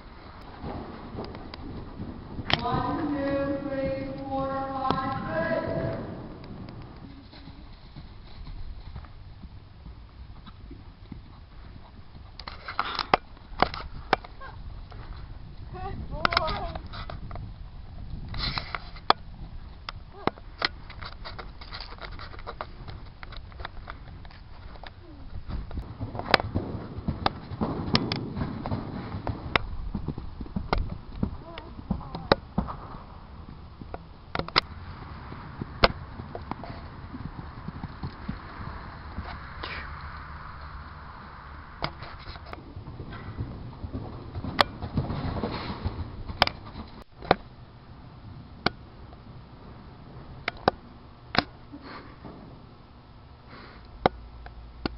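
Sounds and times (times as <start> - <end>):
steady low rumble: 0.0 - 12.5, 13.1 - 21.7, 22.6 - 54.9
hooves and tack clicking: 0.0 - 54.9
short breathy rush: 38.6 - 41.3.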